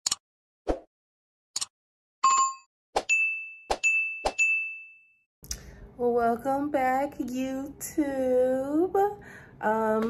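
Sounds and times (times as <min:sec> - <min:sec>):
notification bell ding: 0:02.2 - 0:05.2.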